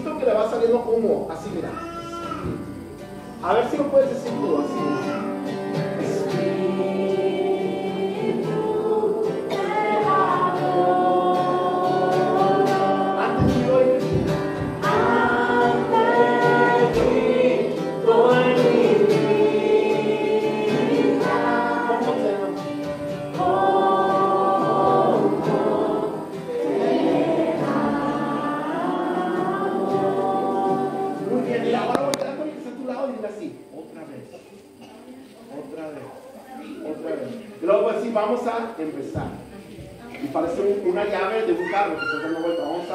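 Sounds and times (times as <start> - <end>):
group singing worship song: 2.4 - 33.4.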